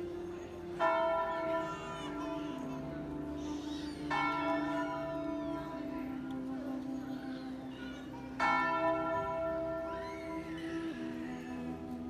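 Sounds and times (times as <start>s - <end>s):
church bell ringing: 0.0s - 12.0s.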